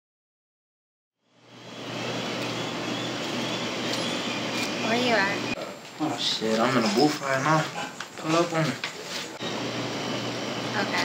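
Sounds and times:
outdoor background noise: 0:01.2 - 0:11.0.

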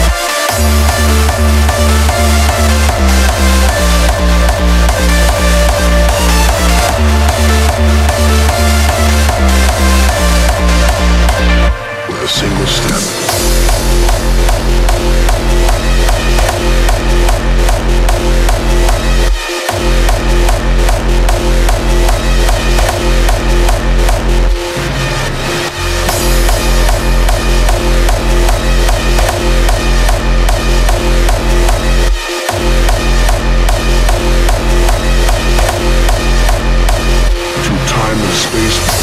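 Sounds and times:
distorted kick drum: 0:13.3 - 0:24.6, 0:26.1 - 0:39.0.

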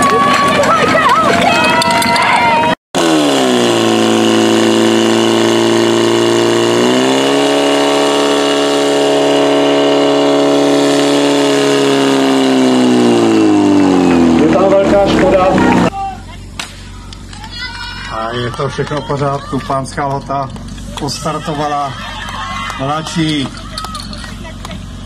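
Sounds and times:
crowd voices: 0:00.0 - 0:02.8, 0:14.0 - 0:24.9
pump engine running: 0:03.0 - 0:25.0.

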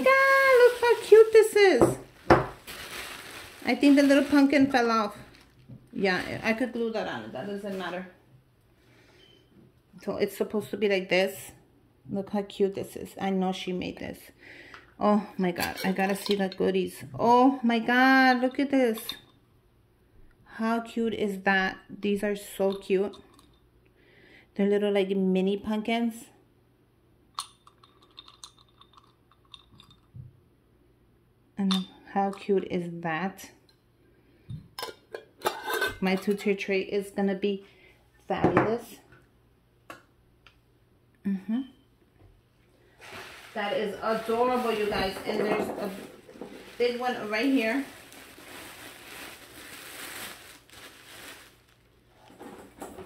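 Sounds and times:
gift wrapping paper rustling: 0:00.0 - 0:06.7, 0:43.0 - 0:52.8
small pumpkins clinking against glass jar: 0:27.4 - 0:30.2.

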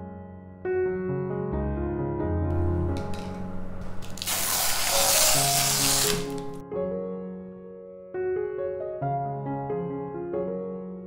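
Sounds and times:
soft piano music: 0:00.0 - 0:11.0
spray hiss: 0:04.1 - 0:06.5.

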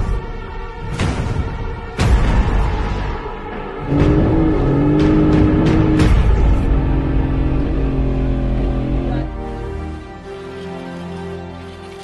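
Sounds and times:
background music: 0:00.0 - 0:12.0
outboard motor droning: 0:03.9 - 0:12.0.

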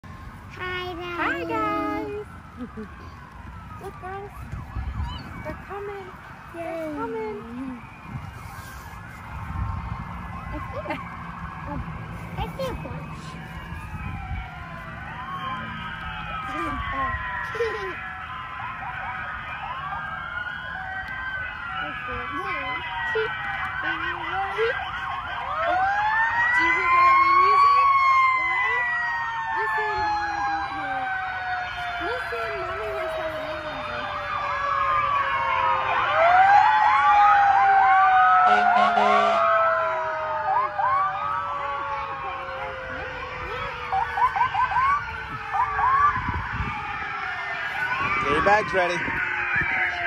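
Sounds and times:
vehicle sirens wailing: 0:00.0 - 0:50.0.

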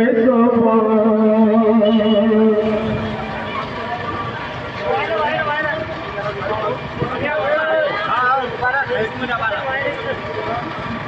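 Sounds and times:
men chanting: 0:00.0 - 0:03.4
crowd noise: 0:00.0 - 0:11.0.

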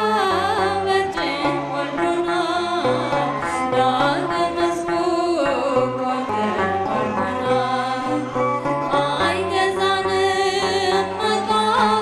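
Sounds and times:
instrumental accompaniment: 0:00.0 - 0:12.0
woman singing a hymn: 0:00.0 - 0:12.0.

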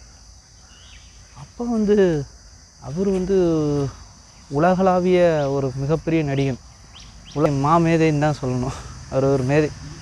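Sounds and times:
high-pitched insect chirr: 0:00.0 - 0:10.0.

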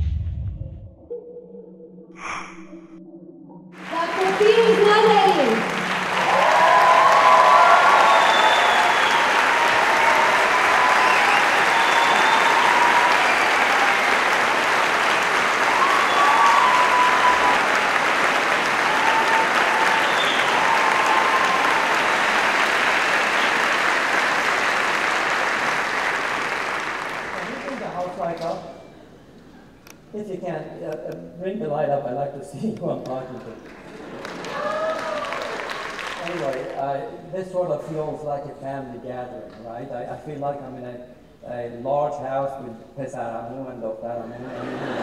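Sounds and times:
audience applauding: 0:03.8 - 0:28.6, 0:33.3 - 0:36.9.

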